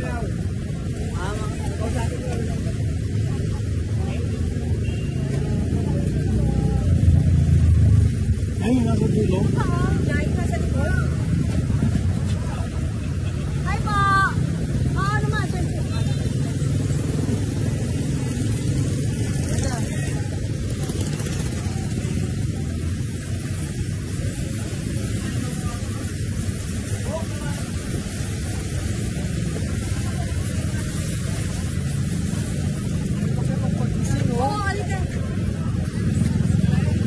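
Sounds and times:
motorcycle engines running: 0.0s - 37.0s.

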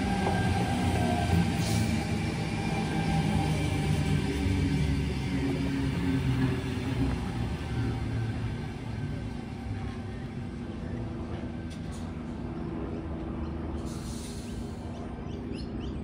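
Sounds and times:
electric train rumbling past: 0.0s - 16.0s.

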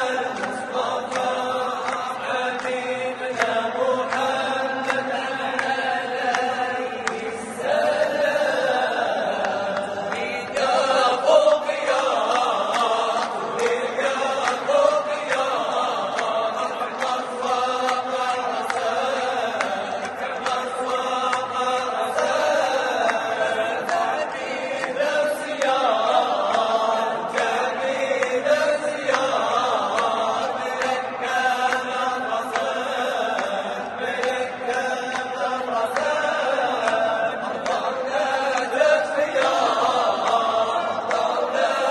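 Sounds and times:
men singing a chant: 0.0s - 41.9s.

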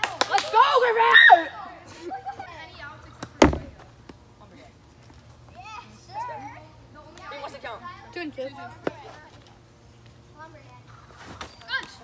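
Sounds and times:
children shouting and talking: 0.0s - 3.4s, 5.4s - 12.0s.

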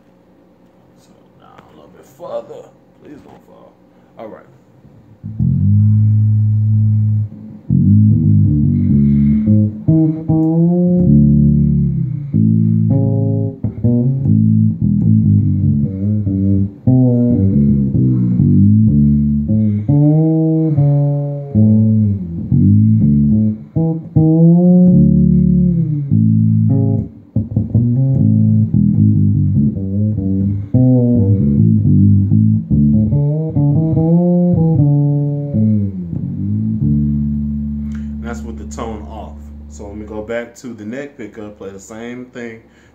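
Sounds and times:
fretless bass sliding notes: 5.2s - 40.4s.

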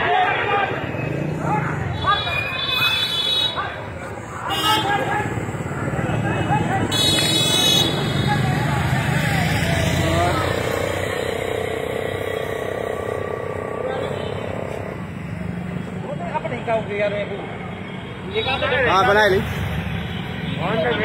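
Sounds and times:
scattered voices: 0.0s - 17.9s
vehicle engines running: 3.6s - 17.9s
vehicle horn toot: 6.9s - 8.3s.

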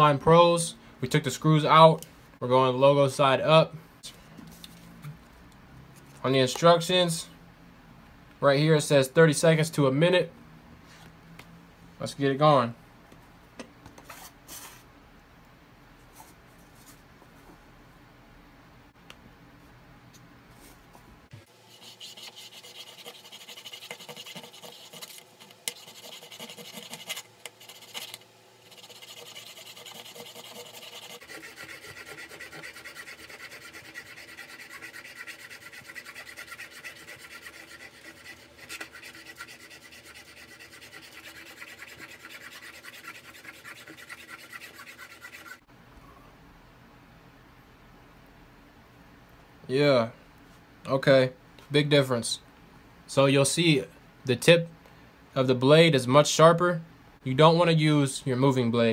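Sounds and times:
metal blade scraping: 21.8s - 45.6s.

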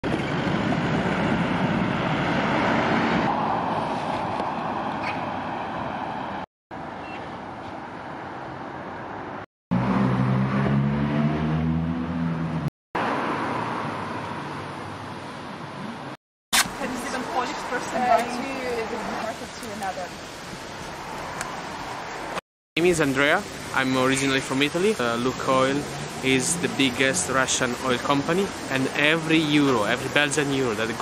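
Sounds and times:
cars passing on road: 0.0s - 31.0s.

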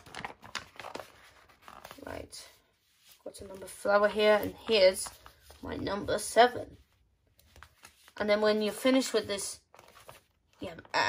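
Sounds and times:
paper sticker sheet crinkling: 0.0s - 2.2s, 6.8s - 8.9s, 9.6s - 10.9s.

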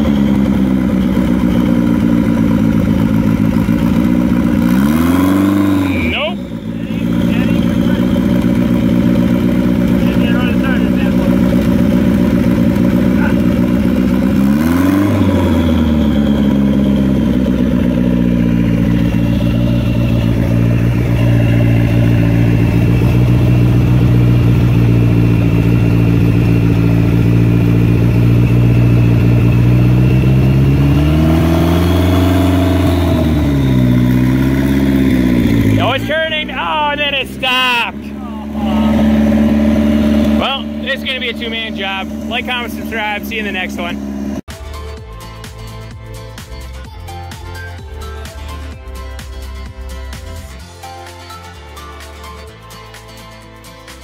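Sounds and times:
engine revving: 0.0s - 46.9s
car engine idling: 0.0s - 54.0s.

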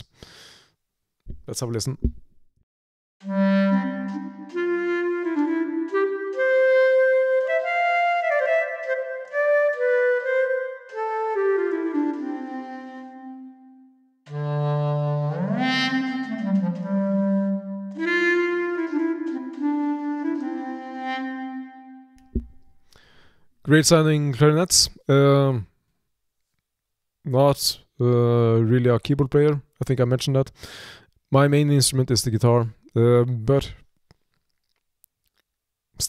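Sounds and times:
clarinets playing in harmony: 3.2s - 22.2s.

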